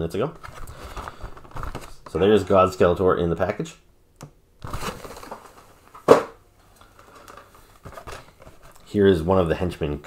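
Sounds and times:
plastic packaging crinkling: 0.4 - 2.2, 4.6 - 8.8
sharp plastic crackle: 4.6 - 6.4.

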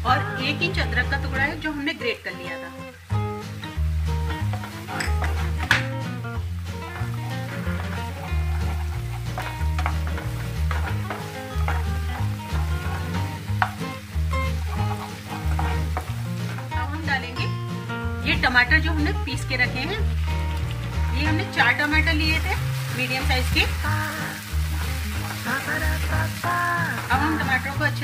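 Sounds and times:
onion sizzling in hot oil: 0.0 - 28.0
background music with bass line: 2.9 - 28.0
wooden spatula scraping a pan: 4.2 - 5.7, 6.7 - 17.2, 19.8 - 28.0.

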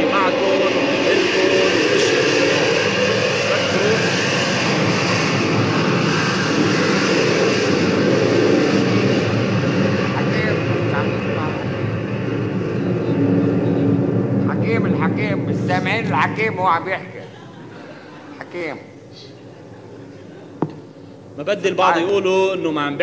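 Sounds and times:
airplane flying over: 0.0 - 23.0.

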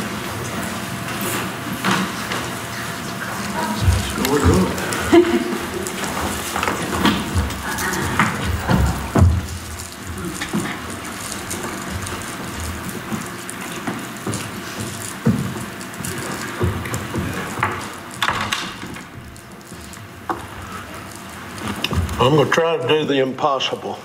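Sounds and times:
footsteps: 0.0 - 22.6
steady background hush: 0.0 - 24.0.

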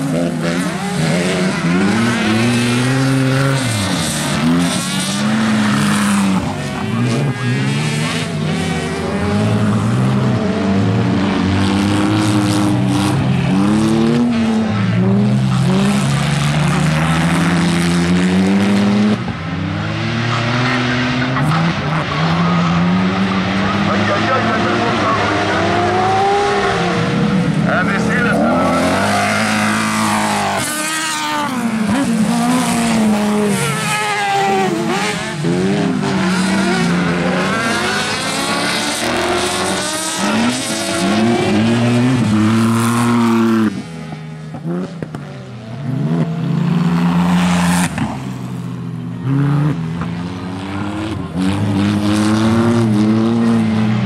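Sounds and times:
racing buggy engines revving: 0.0 - 54.0.

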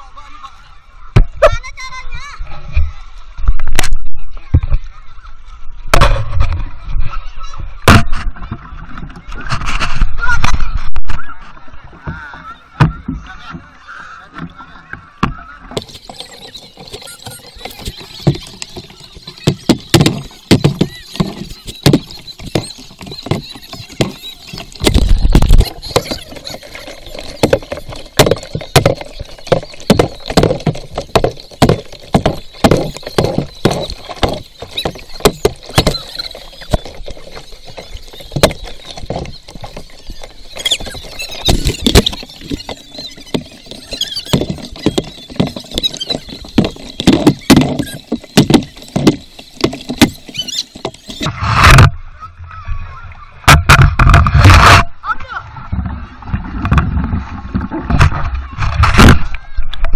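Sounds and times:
water splashing against canoe: 11.9 - 51.9.

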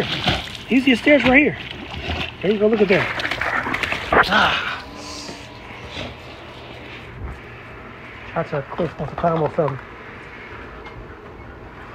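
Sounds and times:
low mechanical hum: 0.0 - 11.9.

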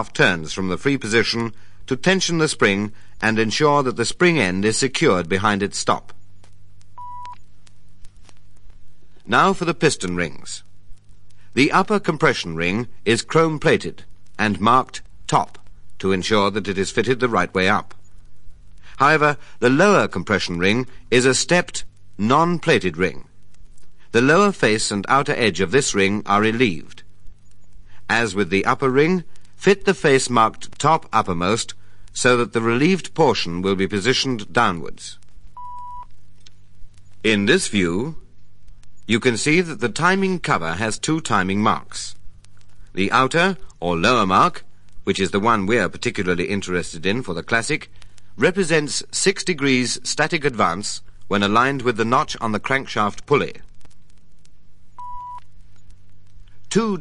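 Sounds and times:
low hum with crackle: 0.0 - 57.0
electronic beep: 7.0 - 7.4, 35.6 - 36.1, 55.0 - 55.4.

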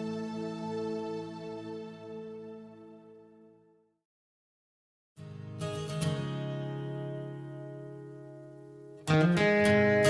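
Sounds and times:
guitar chord ringing: 5.6 - 10.0.

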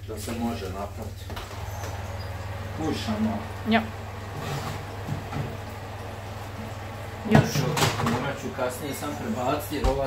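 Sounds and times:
metal baking tray sliding: 4.3 - 5.2.

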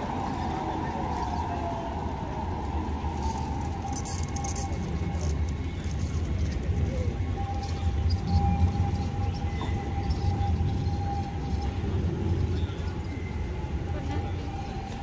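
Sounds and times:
electrical whine: 0.0 - 15.0
tram rumble: 0.0 - 15.0.

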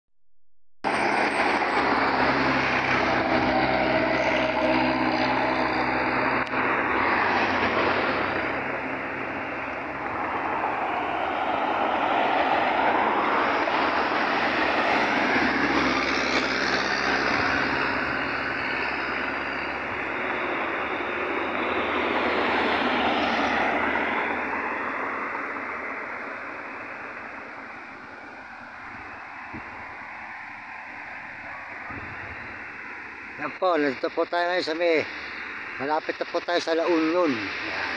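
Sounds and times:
road traffic passing close: 0.8 - 37.9.

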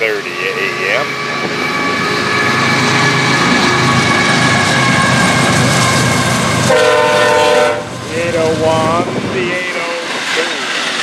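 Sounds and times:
diesel engine rumble: 0.0 - 11.0
train wheel noise: 0.0 - 11.0
locomotive air horn: 6.6 - 7.9.

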